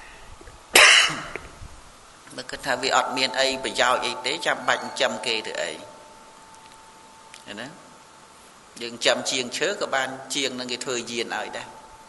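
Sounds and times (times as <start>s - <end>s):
person coughing: 0.8s - 1.5s.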